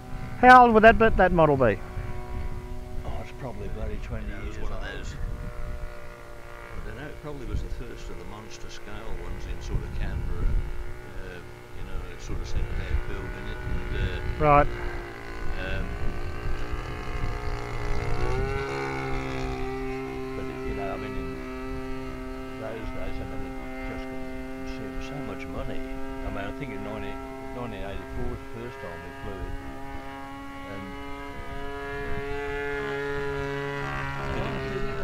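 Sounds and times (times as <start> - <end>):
model aircraft engine droning: 0.0 - 35.0.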